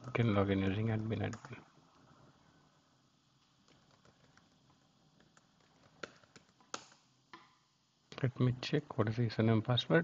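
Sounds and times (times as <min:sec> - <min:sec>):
faint keyboard typing: 0:00.0 - 0:02.1, 0:03.4 - 0:07.0.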